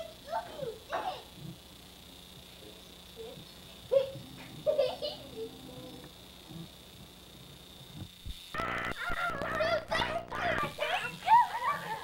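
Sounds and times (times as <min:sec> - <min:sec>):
children shrieking and yelling: 0:09.2 - 0:12.0.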